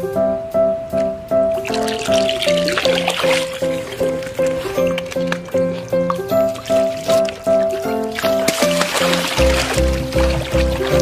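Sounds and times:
bouncy background music: 0:00.0 - 0:11.0.

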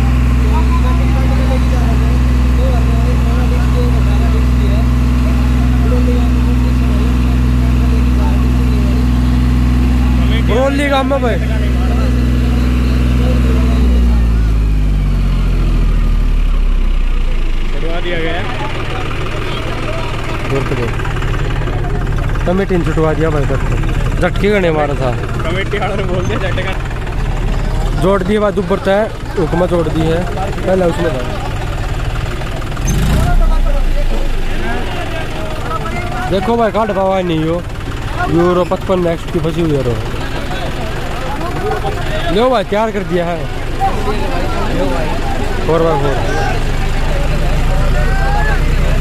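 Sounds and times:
crowd voices: 0:00.0 - 0:49.0
tractor diesel engine running hard: 0:00.0 - 0:49.0.

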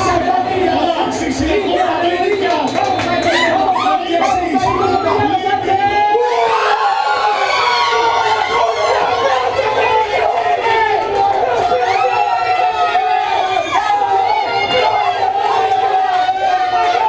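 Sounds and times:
group shouting and cheering: 0:00.0 - 0:17.0.

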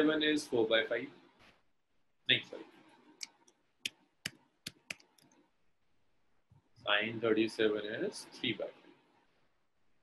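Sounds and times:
stylus tapping on pen tablet: 0:03.2 - 0:05.3.

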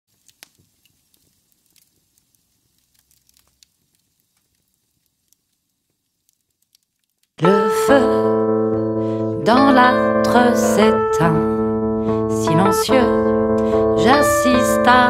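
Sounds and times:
fire crackling and popping: 0:00.1 - 0:07.6
keyboard chord: 0:07.4 - 0:15.0
woman singing: 0:07.4 - 0:15.0.

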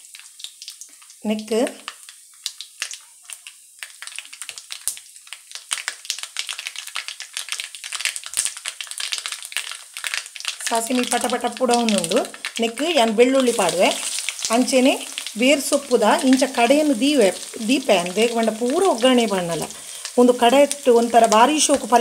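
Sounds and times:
seeds spluttering in hot oil: 0:00.0 - 0:22.0.

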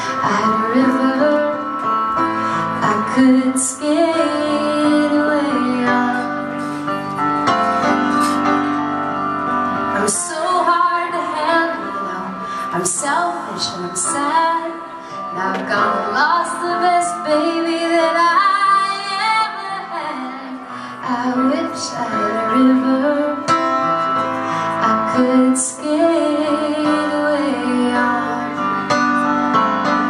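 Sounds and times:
woman singing: 0:00.0 - 0:06.6, 0:09.8 - 0:23.9, 0:24.6 - 0:30.0
piano accompaniment: 0:00.0 - 0:30.0.

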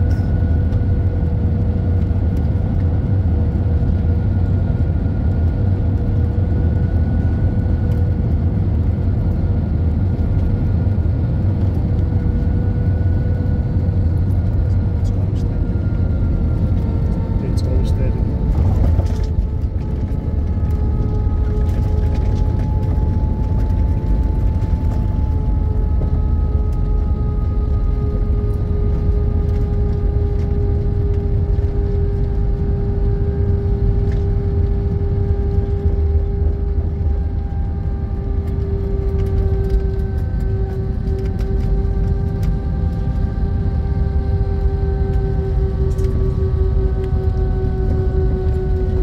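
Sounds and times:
jet engines whining down: 0:00.0 - 0:49.0
low rumble of wheels and airframe: 0:00.0 - 0:49.0.

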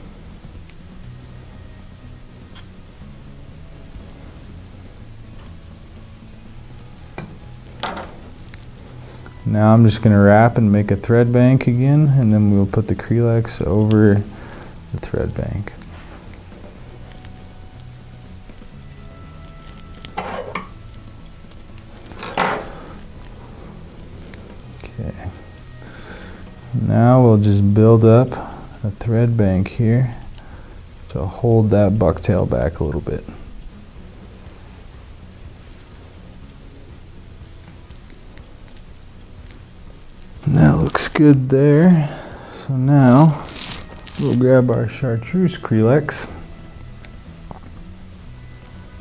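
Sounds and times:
low steady hum: 0:00.0 - 0:49.0
quiet background music: 0:00.0 - 0:49.0
handling noises: 0:43.0 - 0:45.0.

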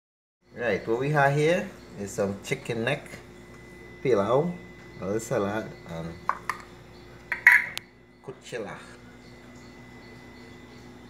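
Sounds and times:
glass jar lid clinking: 0:07.3 - 0:07.8.

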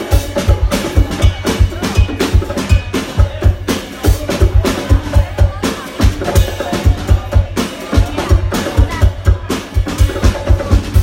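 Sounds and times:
live band playing: 0:00.0 - 0:11.0
snare and cymbal hits: 0:00.0 - 0:11.0.

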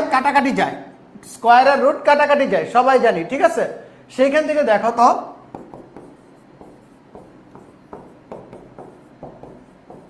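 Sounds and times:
marker writing on whiteboard: 0:05.4 - 0:10.0.

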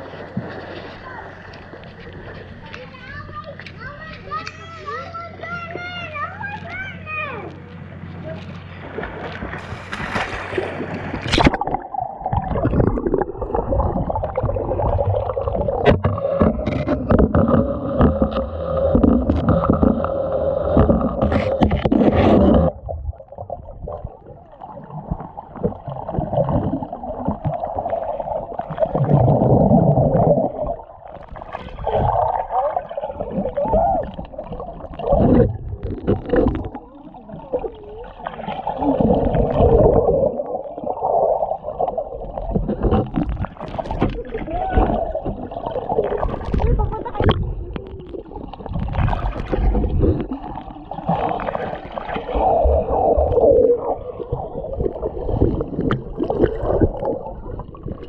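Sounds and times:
underwater pool water sloshing: 0:00.0 - 0:58.0.

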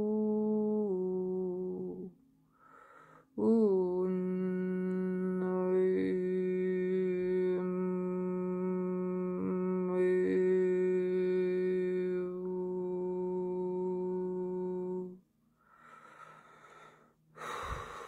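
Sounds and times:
woman humming a low note: 0:00.0 - 0:02.2, 0:03.4 - 0:15.2.

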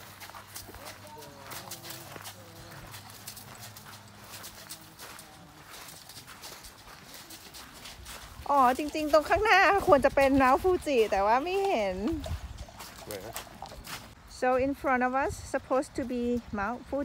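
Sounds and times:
horse hooves on dirt: 0:00.0 - 0:17.0
people's footsteps: 0:00.0 - 0:17.0.

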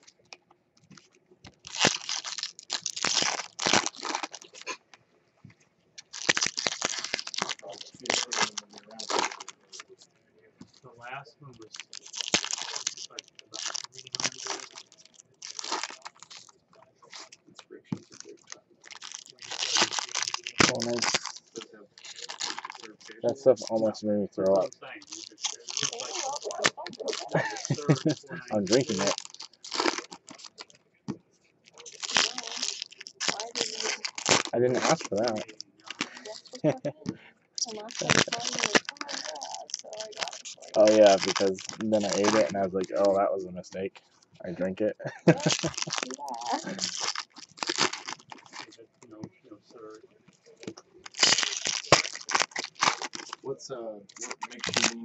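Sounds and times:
foil wrappers crinkling and tearing: 0:00.0 - 0:04.9, 0:06.0 - 0:10.9, 0:11.6 - 0:30.8, 0:31.6 - 0:37.0, 0:37.6 - 0:43.3, 0:44.1 - 0:49.2, 0:50.3 - 0:53.5, 0:54.1 - 0:55.0.

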